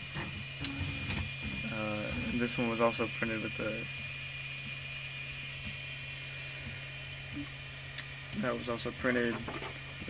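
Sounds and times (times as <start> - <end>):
high-pitched whine: 0.0 - 9.1
printer motor hum: 0.0 - 10.0.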